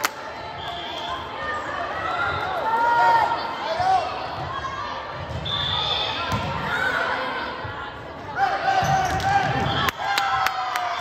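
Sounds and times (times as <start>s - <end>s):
voices in echoing gym: 0.0s - 11.0s.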